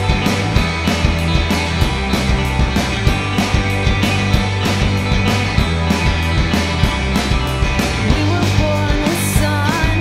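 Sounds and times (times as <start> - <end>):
rock band playing live: 0.0 - 10.0
woman singing: 8.0 - 10.0.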